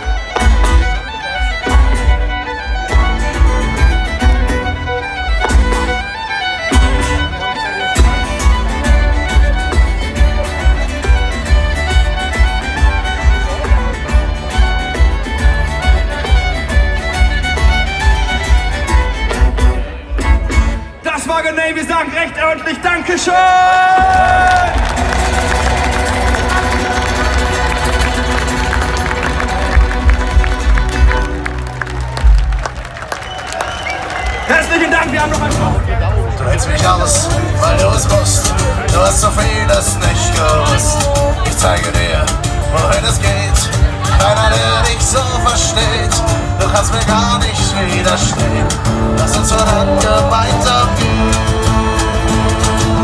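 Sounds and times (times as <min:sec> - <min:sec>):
lead melody: 0:00.0 - 0:21.0, 0:34.7 - 0:53.0
live folk metal band playing: 0:00.0 - 0:53.0
crowd cheering: 0:22.4 - 0:53.0
heavy low drums: 0:35.0 - 0:53.0.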